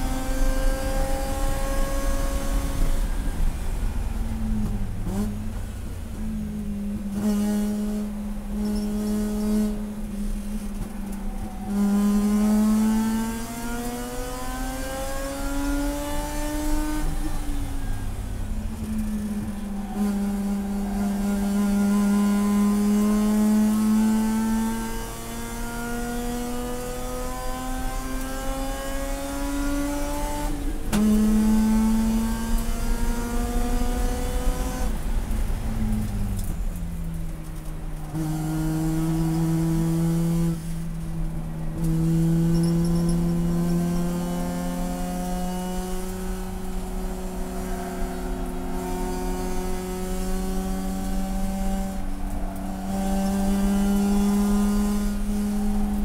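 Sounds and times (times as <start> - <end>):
race car engine revving: 0.0 - 5.7, 6.6 - 56.0.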